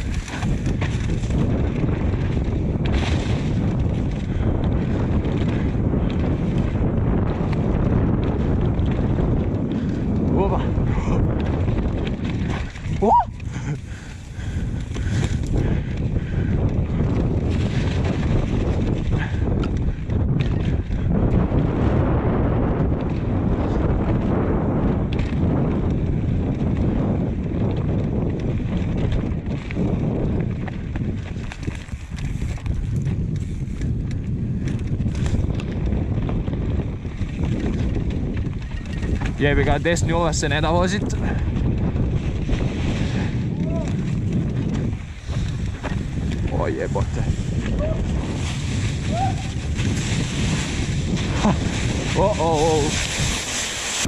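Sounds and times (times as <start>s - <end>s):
bike rattling over bumps: 0.0s - 54.0s
tyres rumbling on dirt trail: 0.0s - 54.0s
wind buffeting microphone: 0.0s - 54.0s.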